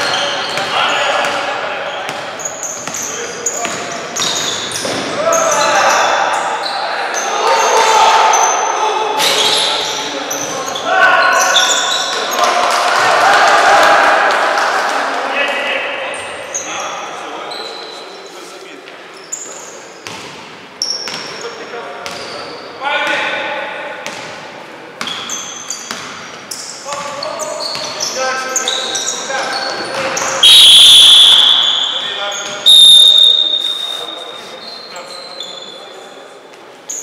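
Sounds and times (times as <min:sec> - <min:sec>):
players shouting: 0:05.0 - 0:15.6
referee's whistle blasts: 0:30.4 - 0:35.8.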